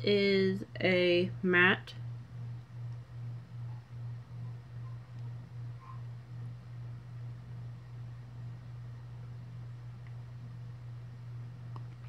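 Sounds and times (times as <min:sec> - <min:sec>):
pulsing low hum: 0:00.0 - 0:12.0.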